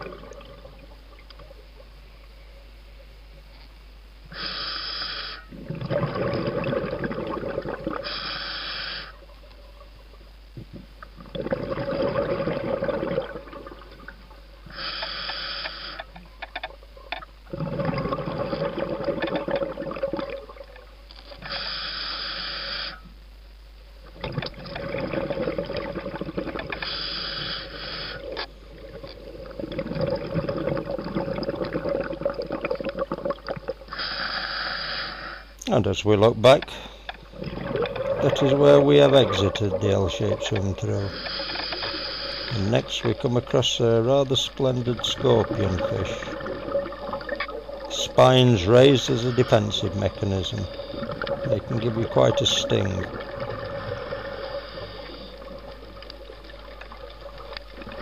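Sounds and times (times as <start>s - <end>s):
exhaled bubbles rushing: 0.0s - 1.0s, 5.5s - 8.0s, 11.2s - 14.1s, 17.5s - 20.8s, 24.2s - 26.7s, 28.7s - 33.8s, 37.3s - 41.1s, 42.6s - 58.0s
diver inhaling through regulator: 4.3s - 5.6s, 8.0s - 9.2s, 14.7s - 16.1s, 21.4s - 23.0s, 26.8s - 28.4s, 33.9s - 35.6s, 41.1s - 42.7s, 53.6s - 55.7s.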